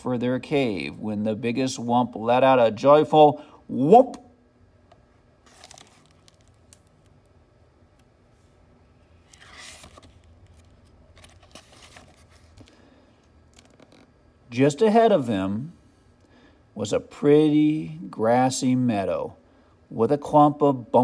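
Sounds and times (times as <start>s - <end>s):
book pages turning: 5.4s - 7.1s, 9.2s - 12.8s, 13.5s - 14.1s.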